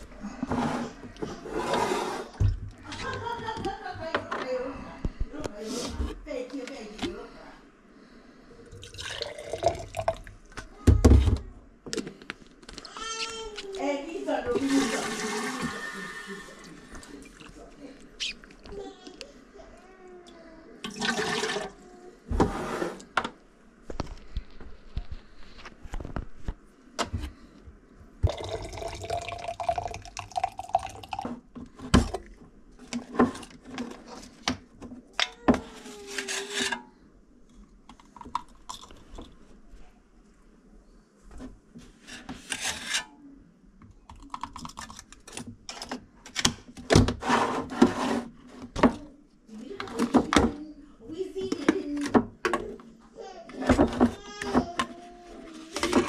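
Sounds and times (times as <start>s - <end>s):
water pouring into bottle: 8.8s - 10.3s, 20.8s - 21.8s, 28.2s - 31.2s.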